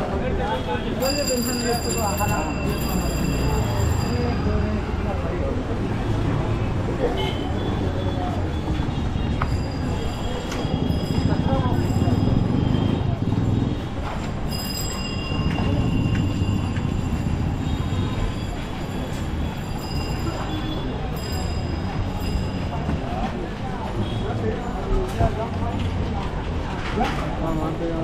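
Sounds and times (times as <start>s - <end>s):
handcarts rolling on road: 0.0s - 28.0s
people's voices: 0.0s - 28.0s
traffic rumble: 0.0s - 28.0s.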